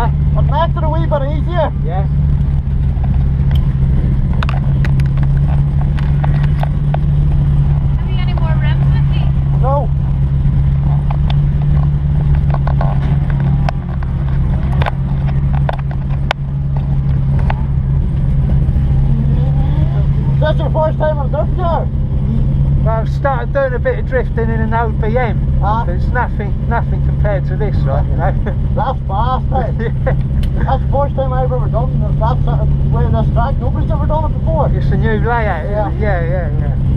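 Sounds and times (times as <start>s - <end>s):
car engine running: 0.0s - 36.9s.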